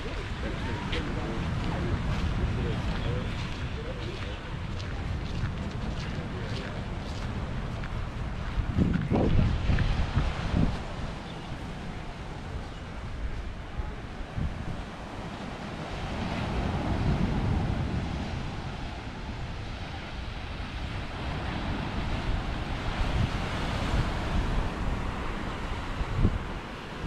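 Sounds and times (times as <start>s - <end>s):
waves breaking on beach: 0.0s - 27.0s
wind buffeting microphone: 0.0s - 27.0s.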